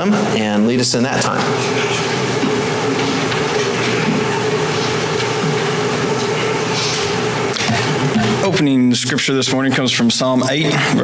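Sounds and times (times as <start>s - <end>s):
steady equipment hum: 0.0s - 11.0s.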